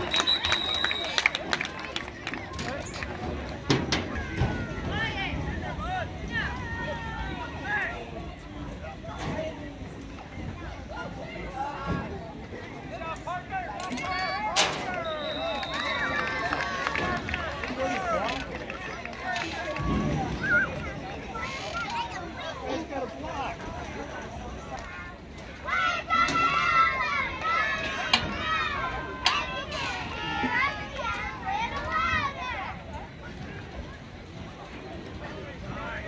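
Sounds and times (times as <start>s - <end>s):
whistle blast: 0.0s - 1.3s, 14.9s - 16.2s
crowd shouting and cheering: 0.0s - 9.5s, 10.6s - 36.0s
children shouting: 25.6s - 32.8s.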